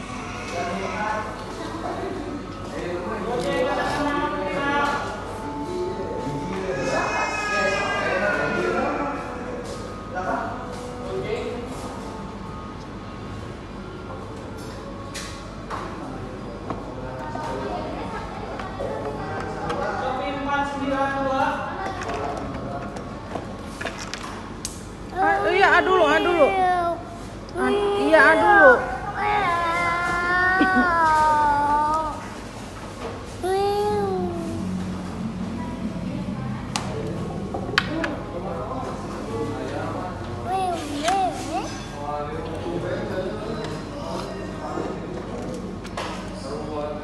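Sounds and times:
faint music: 0:00.0 - 0:47.0
murmur of voices: 0:00.0 - 0:47.0
steady hum: 0:24.4 - 0:44.0.

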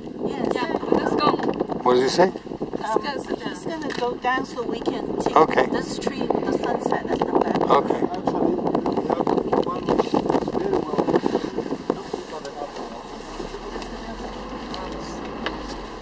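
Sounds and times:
vehicle engine running: 0:02.4 - 0:16.0.

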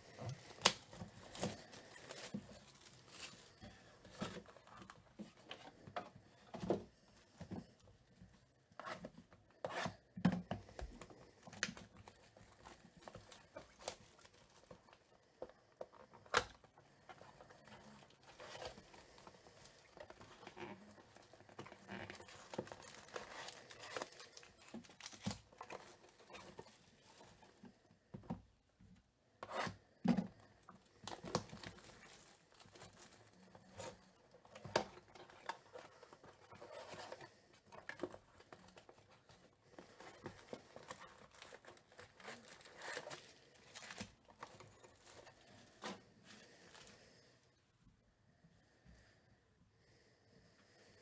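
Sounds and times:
wrapping tearing and crinkling: 0:00.0 - 0:04.9, 0:11.3 - 0:15.2, 0:17.2 - 0:27.5, 0:30.9 - 0:46.9.

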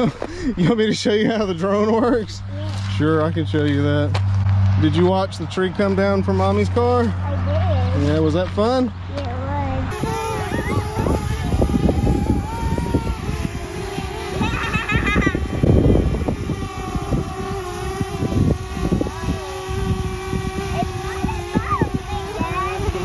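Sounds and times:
drone propellers whining: 0:00.0 - 0:23.0
wind on microphone: 0:09.6 - 0:23.0.

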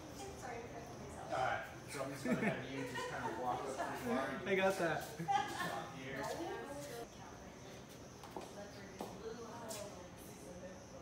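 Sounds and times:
murmur of background chatter: 0:00.0 - 0:11.0.

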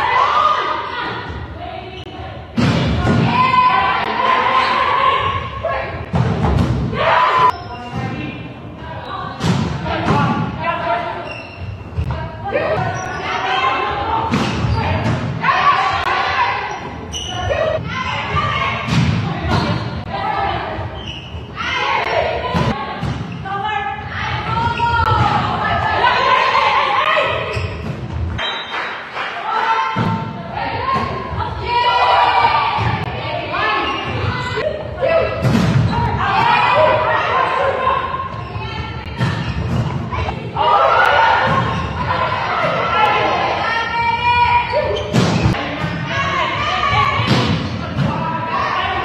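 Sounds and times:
players shouting calls: 0:00.0 - 0:06.2, 0:06.8 - 0:27.8, 0:28.4 - 0:49.0.

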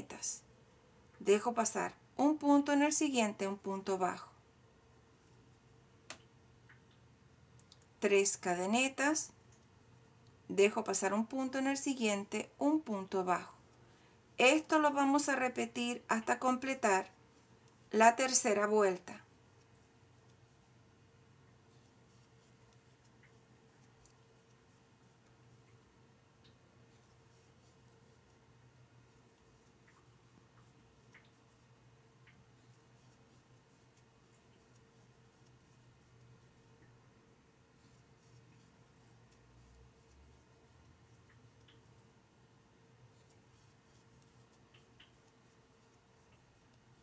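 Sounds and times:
faint steady hum: 0:00.0 - 0:47.0
crochet hook ticking and rustling: 0:06.1 - 0:20.8, 0:21.5 - 0:37.1, 0:37.7 - 0:47.0.

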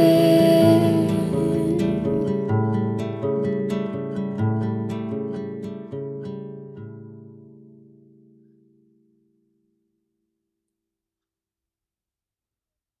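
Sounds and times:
acoustic folk chord on plucked strings: 0:00.0 - 0:09.7.

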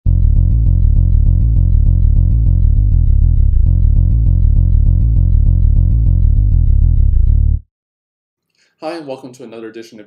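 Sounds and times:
pulsing low bass notes: 0:00.1 - 0:07.7.

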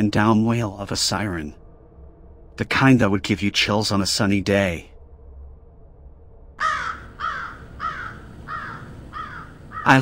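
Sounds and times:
crow cawing: 0:06.6 - 0:10.0.

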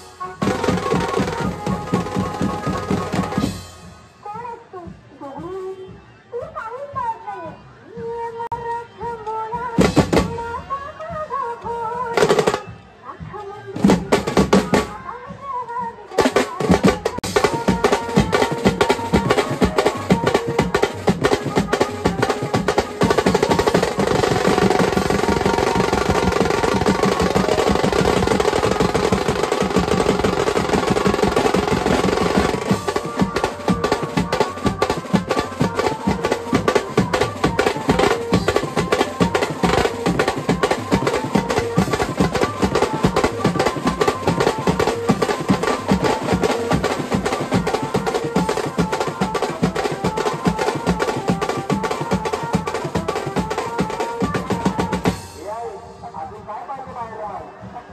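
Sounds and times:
snare drums: 0:00.0 - 0:04.1, 0:09.6 - 0:10.7, 0:12.1 - 0:12.9, 0:13.7 - 0:15.0, 0:16.1 - 0:55.6
melody over drums: 0:00.0 - 0:06.2, 0:07.5 - 0:15.3, 0:16.0 - 0:56.4
cymbals: 0:16.2 - 0:56.1.

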